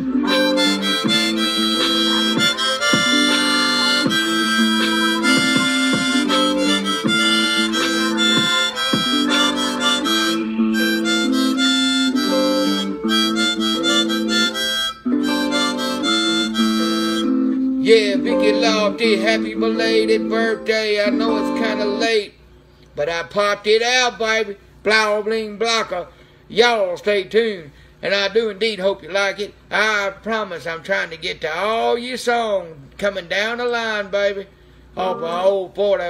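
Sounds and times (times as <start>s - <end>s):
harmonica notes and chords: 0.0s - 22.4s, 35.0s - 35.7s.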